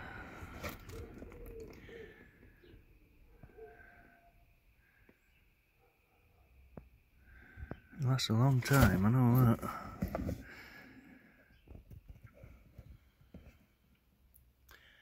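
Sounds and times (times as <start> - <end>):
faint bird calls: 0.0 - 6.5.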